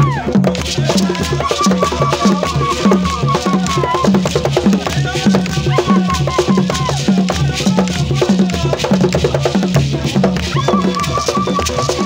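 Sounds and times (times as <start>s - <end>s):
drumming: 0.0s - 12.0s
voices singing: 0.0s - 12.0s
gourd shakers rattling: 0.7s - 12.0s.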